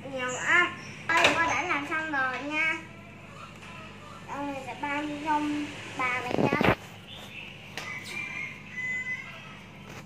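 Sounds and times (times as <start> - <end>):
high-pitched bird calls: 6.8 - 10.0.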